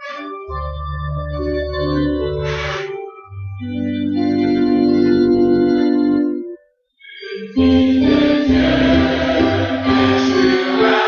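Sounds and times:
organ holding a chord: 0.0 - 6.6, 7.5 - 11.0.

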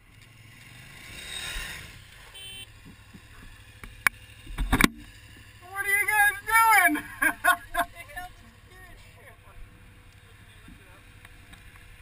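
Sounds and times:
motorcycles running in sand: 0.0 - 12.0
motorcycle falling with clack and thumps: 4.5 - 5.1.

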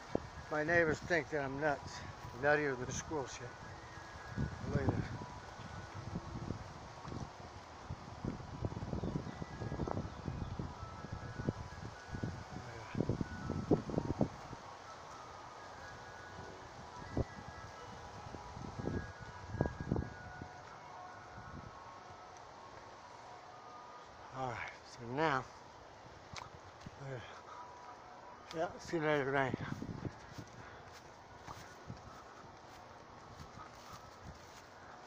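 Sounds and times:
wind buffeting microphone: 0.0 - 22.0, 28.5 - 35.0.

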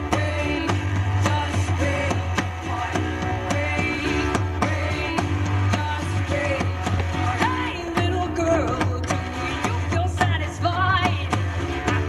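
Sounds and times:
steady percussion beat: 0.0 - 12.0
strummed acoustic guitars: 0.0 - 12.0
woman singing: 0.0 - 12.0.

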